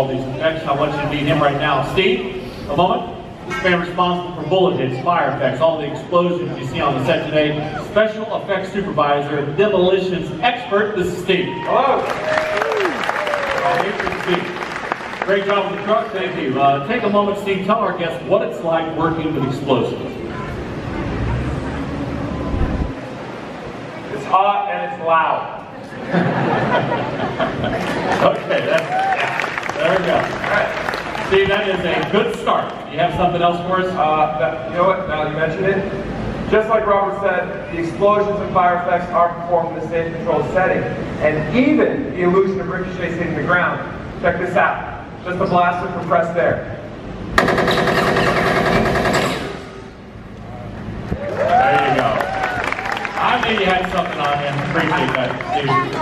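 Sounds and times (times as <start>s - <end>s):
pyrotechnic deep rumble: 21.2s - 23.2s
rapid gunfire-like rattle: 47.4s - 49.8s
voices: 53.2s - 56.0s.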